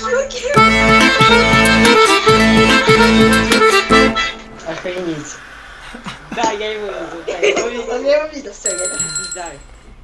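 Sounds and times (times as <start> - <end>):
people laughing: 5.8 - 8.0
bell-like ringing chime: 8.6 - 10.0.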